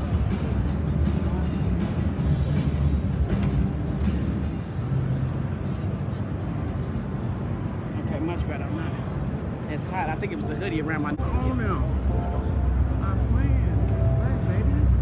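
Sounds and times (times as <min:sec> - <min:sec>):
background music: 0:00.0 - 0:08.0, 0:09.4 - 0:15.0
crowd chatter: 0:00.0 - 0:15.0.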